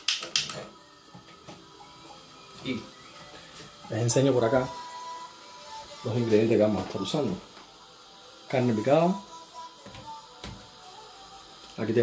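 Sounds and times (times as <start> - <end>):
gas stove igniter clicking: 0.0 - 1.3.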